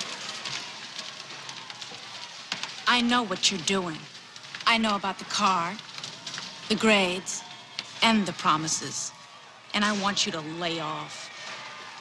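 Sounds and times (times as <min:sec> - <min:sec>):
hiss with faint crackles: 0:00.0 - 0:08.2.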